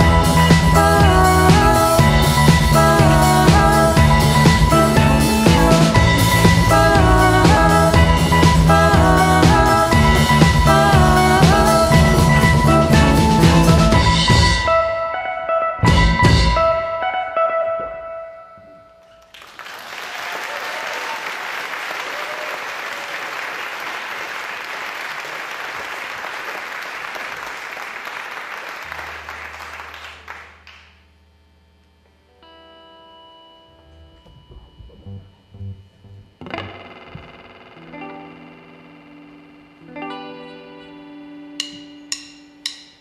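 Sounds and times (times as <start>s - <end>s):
electric guitar notes: 0.0s - 19.4s, 28.8s - 43.0s
audience applauding: 19.2s - 31.0s
band chord ringing: 32.2s - 43.0s.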